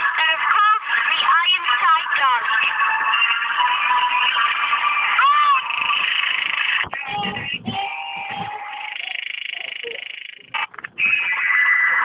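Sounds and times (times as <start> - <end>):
short electronic bursts: 5.2 - 12.0.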